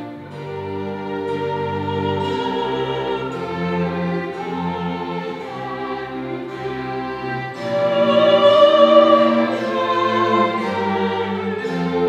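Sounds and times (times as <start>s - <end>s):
bowed strings: 0.0s - 12.0s
countertenor singing: 0.0s - 12.0s.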